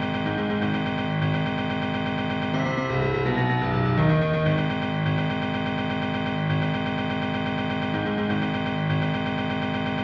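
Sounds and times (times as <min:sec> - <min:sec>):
computer-played piano metal riff: 0:00.0 - 0:10.0.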